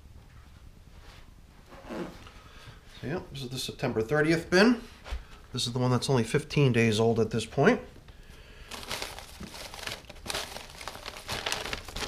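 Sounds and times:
plastic bin being handled: 8.7s - 12.0s.

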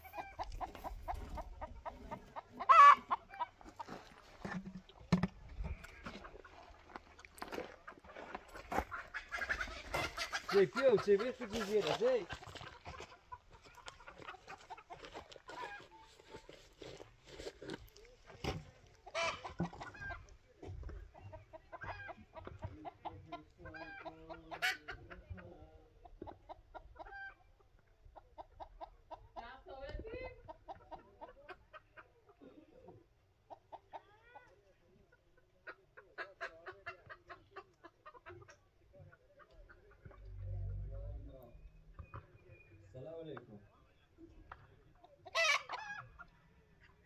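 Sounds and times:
chickens clucking: 0.0s - 47.0s.

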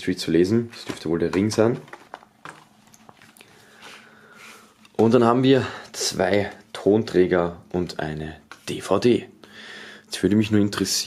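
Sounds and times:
card rustling: 0.5s - 4.0s.

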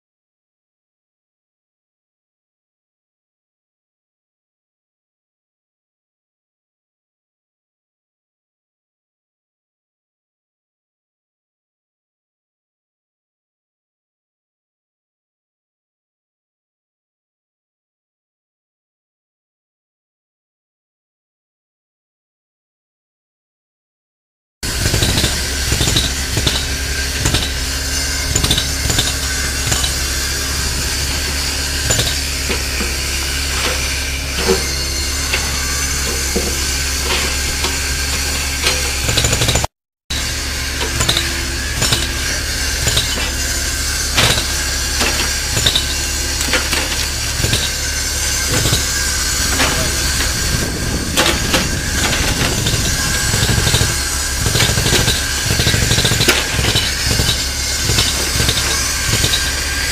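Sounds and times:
diesel engine running: 40.2s - 59.9s.

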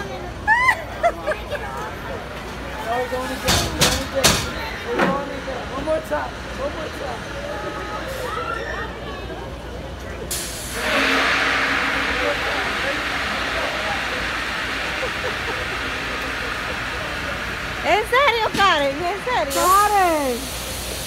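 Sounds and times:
loud compressed air hiss: 10.3s - 21.0s.

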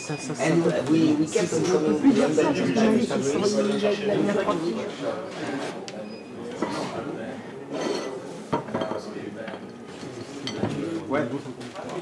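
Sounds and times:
voices talking: 0.0s - 7.0s
dishes and cutlery clinking: 6.6s - 7.0s, 7.7s - 11.0s.

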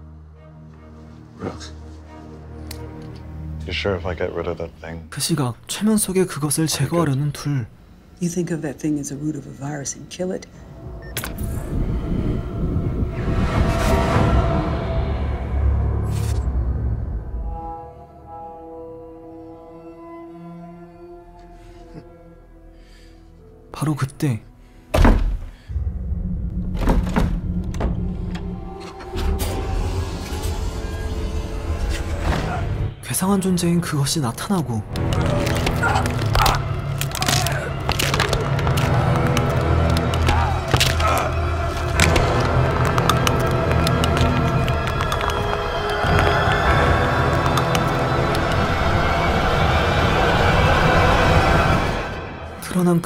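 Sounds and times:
low drone: 9.4s - 23.3s, 25.7s - 33.0s, 34.9s - 52.7s
low rumble: 10.4s - 17.6s, 25.7s - 32.2s
sharp cracking and crunching: 35.0s - 46.6s.

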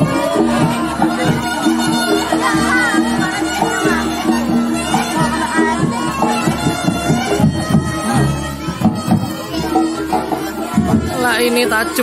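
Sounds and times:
drumming: 0.0s - 12.0s
shrill reedy shawm melody: 0.0s - 12.0s.

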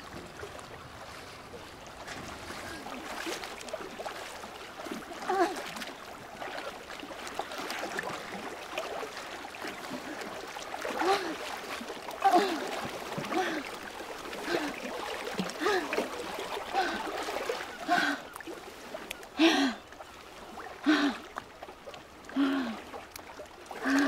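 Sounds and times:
water splashing and lapping: 0.0s - 24.0s
woman gasping and grunting: 12.2s - 13.7s, 15.6s - 16.0s, 19.4s - 19.8s.

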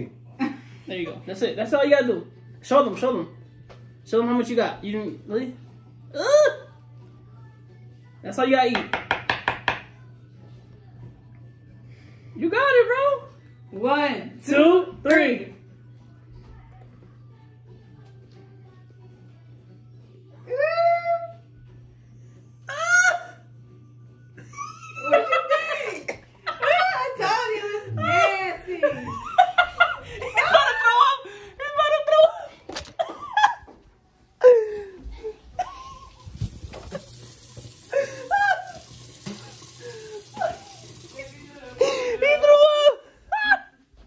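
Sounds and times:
people laughing: 24.4s - 33.8s, 41.6s - 43.9s.

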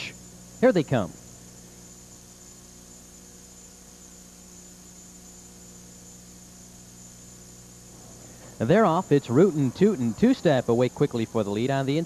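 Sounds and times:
faint high whine: 0.0s - 12.0s
low electrical hum: 0.0s - 12.0s
tape hiss: 0.0s - 12.0s.

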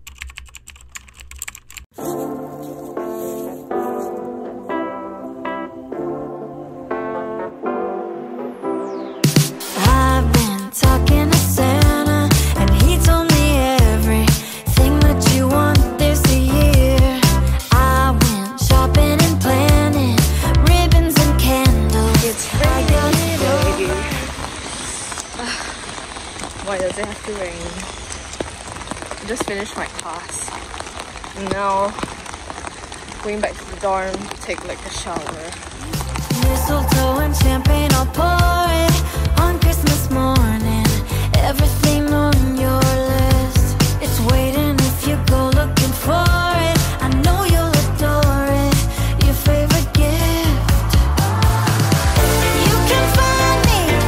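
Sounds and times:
keyboard typing clicks: 0.0s - 1.9s
woman's voice: 9.8s - 24.3s, 26.6s - 27.9s, 29.2s - 30.6s, 31.4s - 32.0s, 33.2s - 35.6s, 36.4s - 50.7s
rain pattering on umbrella: 23.6s - 43.7s.

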